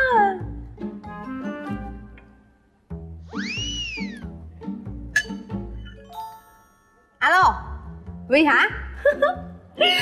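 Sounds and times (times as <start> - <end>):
sitcom music with steady beat: 0.0 - 10.0.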